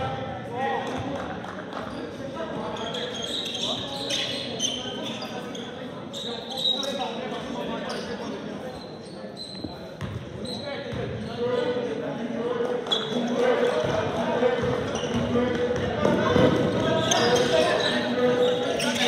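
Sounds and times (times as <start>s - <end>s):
sneakers squeaking: 1.7s - 11.9s, 12.6s - 19.0s.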